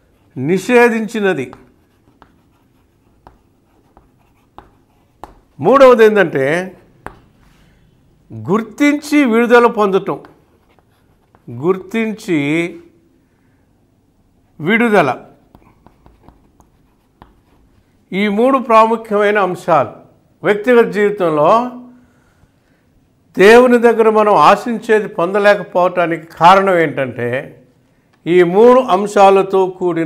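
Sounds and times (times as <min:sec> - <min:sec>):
chalk tapping and scratching: 0:00.0 - 0:06.0, 0:06.8 - 0:07.6, 0:10.0 - 0:12.0, 0:15.4 - 0:17.9.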